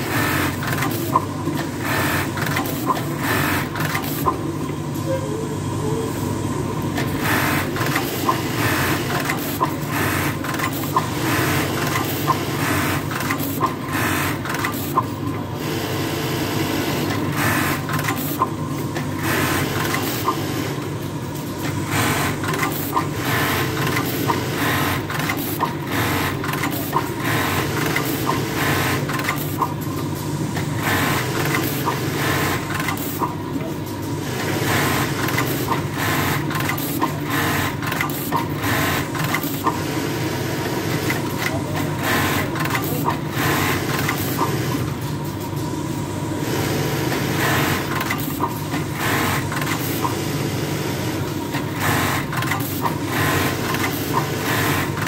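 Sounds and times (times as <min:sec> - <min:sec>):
sewing machine stitching: 0:00.0 - 0:04.4, 0:07.0 - 0:15.0, 0:21.8 - 0:29.7, 0:34.4 - 0:44.8, 0:46.4 - 0:55.0.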